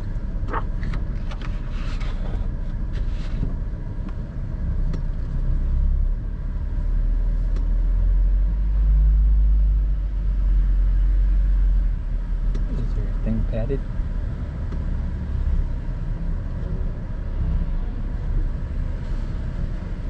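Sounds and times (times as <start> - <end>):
car engine and tyre rumble: 0.0 - 20.0.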